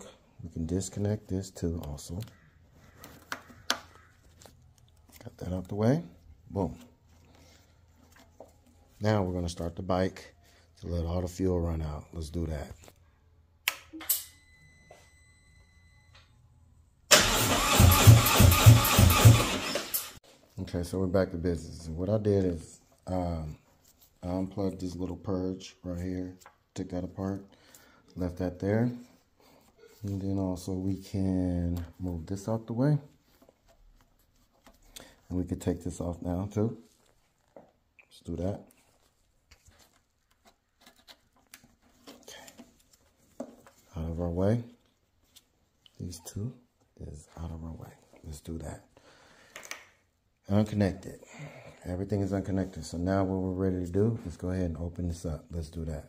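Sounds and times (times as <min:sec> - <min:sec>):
rustles of gloved hands: 0:00.2 - 0:11.3, 0:20.2 - 0:48.8.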